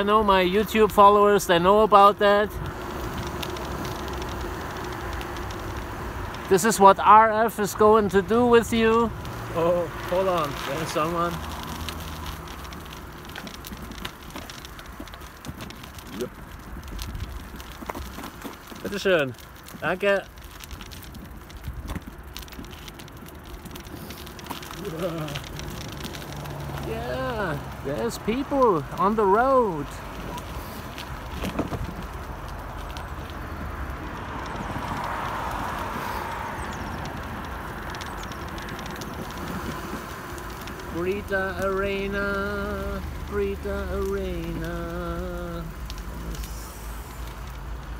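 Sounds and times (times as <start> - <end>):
bicycle rolling on rough asphalt: 0.0 - 47.9
bike tyre noise on pavement: 0.0 - 47.9
crackling ticks: 0.0 - 47.9
hiss: 46.2 - 47.4.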